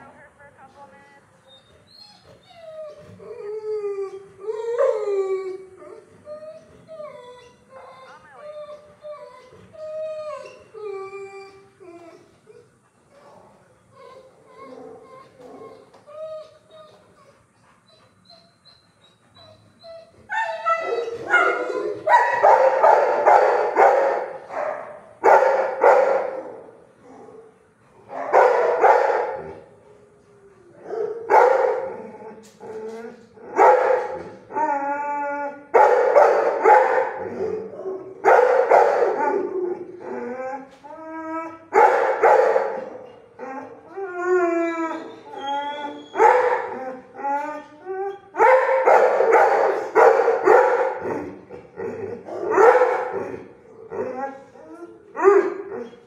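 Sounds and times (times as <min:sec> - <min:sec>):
dogs barking and howling: 0:02.5 - 0:13.4, 0:14.1 - 0:17.1, 0:17.8 - 0:56.0.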